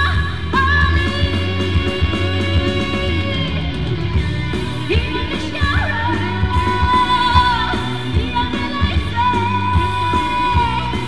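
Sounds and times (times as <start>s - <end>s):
amplified backing music: 0.0s - 11.0s
woman singing pop song: 0.0s - 11.0s.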